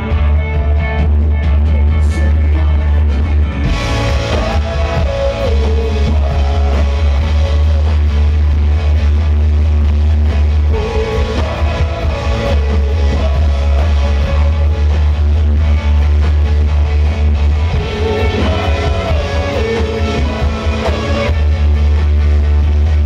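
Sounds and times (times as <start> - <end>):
live rock band playing: 0.0 - 23.0
men singing: 4.0 - 8.3, 10.6 - 15.0, 17.7 - 21.4.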